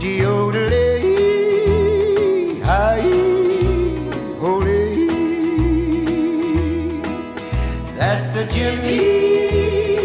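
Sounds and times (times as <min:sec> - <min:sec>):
acoustic guitar: 0:00.0 - 0:10.0
bass: 0:00.0 - 0:10.0.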